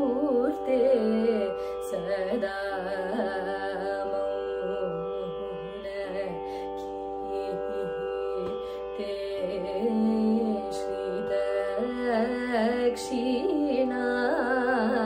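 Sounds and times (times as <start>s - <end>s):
woman singing ornamented melody: 0.0s - 15.0s.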